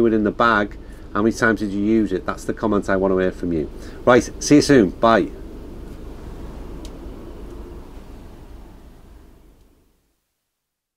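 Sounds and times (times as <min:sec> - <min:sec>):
outdoor rumble and hiss: 0:00.0 - 0:10.8.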